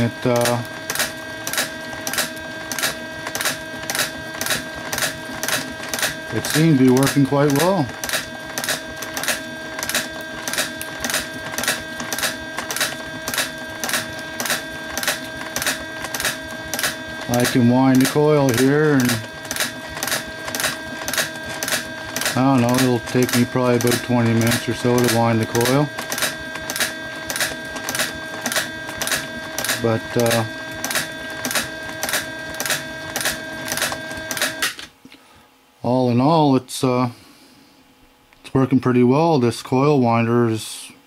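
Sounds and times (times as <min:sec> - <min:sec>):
steady hum: 0:00.0 - 0:41.0.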